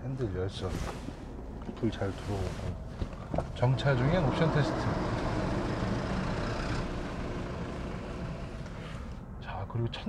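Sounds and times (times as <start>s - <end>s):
vehicle rumble: 0.0s - 10.0s.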